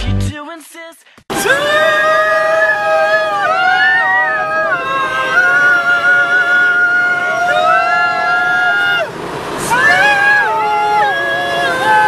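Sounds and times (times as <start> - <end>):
person singing long held notes: 1.3 - 12.0
van road noise: 1.3 - 12.0.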